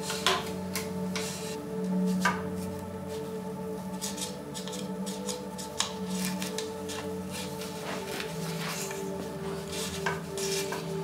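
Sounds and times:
soft background music: 0:00.0 - 0:11.0
handlebar tape rustling: 0:04.0 - 0:11.0.

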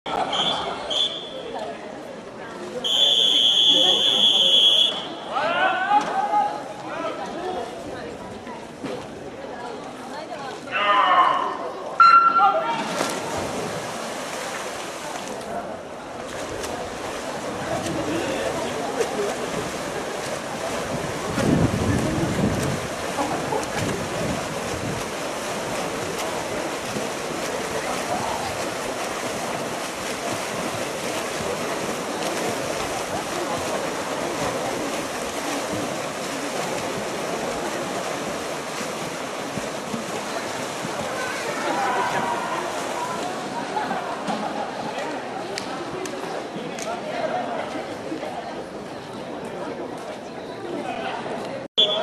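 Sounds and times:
swimmers splashing: 0:02.7 - 0:07.8, 0:10.7 - 0:48.2
long whistle blast: 0:02.9 - 0:05.2, 0:12.0 - 0:12.6
wind on microphone: 0:20.8 - 0:25.2.

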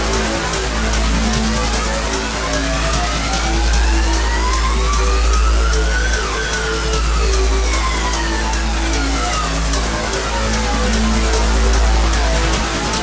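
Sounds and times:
high ticks: 0:00.0 - 0:13.0
repeating synth note pattern: 0:00.0 - 0:13.0
steady bass: 0:00.0 - 0:13.0
synth sweep: 0:00.0 - 0:13.0.

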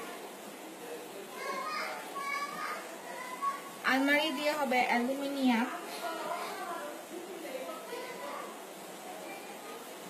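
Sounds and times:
faint high-pitched voices: 0:00.0 - 0:10.0.

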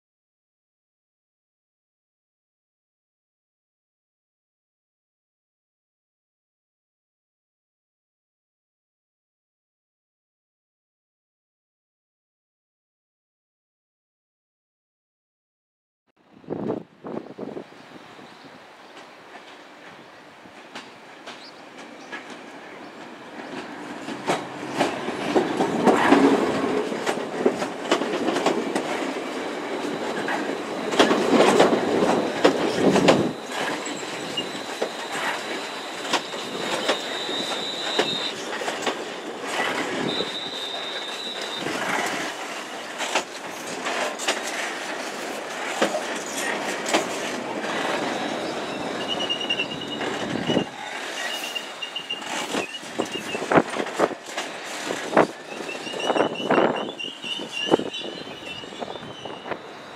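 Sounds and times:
train rumble: 0:16.3 - 0:59.9
train wheels clicking over joints: 0:19.0 - 0:59.9
high thin wheel squeal: 0:29.4 - 0:43.6, 0:46.1 - 0:53.8, 0:54.6 - 0:59.9.

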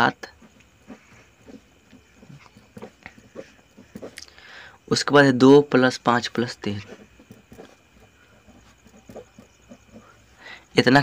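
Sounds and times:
pen scratching on paper: 0:00.1 - 0:04.3, 0:06.2 - 0:10.6.

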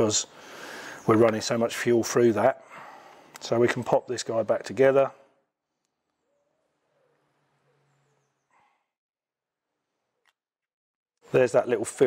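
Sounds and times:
faint small clicks: 0:03.1 - 0:03.5.

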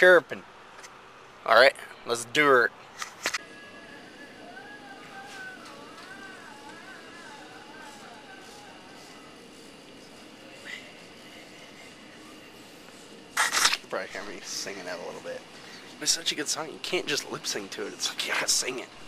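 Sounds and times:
steady background hum: 0:00.0 - 0:19.0
person singing: 0:03.4 - 0:12.4.

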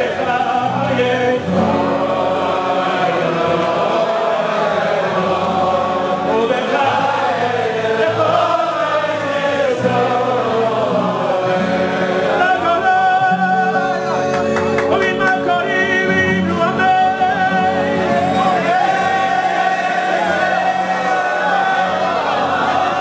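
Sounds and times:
acoustic guitars: 0:00.0 - 0:23.0
man singing devotional melody: 0:00.0 - 0:23.0
men singing along: 0:00.0 - 0:23.0.

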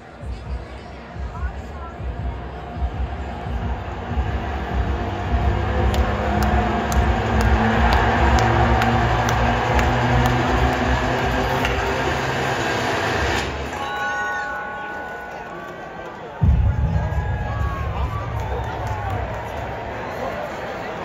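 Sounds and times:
loud train-like rumble: 0:01.8 - 0:13.7, 0:16.4 - 0:21.0.

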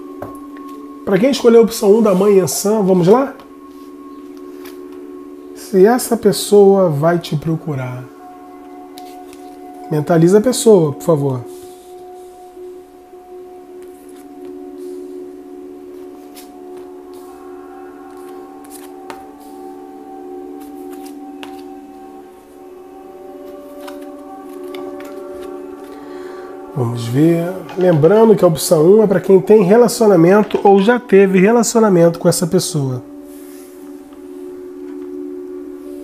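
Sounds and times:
drone-like background music: 0:00.0 - 0:36.0
held two-note chord: 0:00.0 - 0:36.0
cards sliding over cloth: 0:18.1 - 0:19.7, 0:20.6 - 0:21.7.

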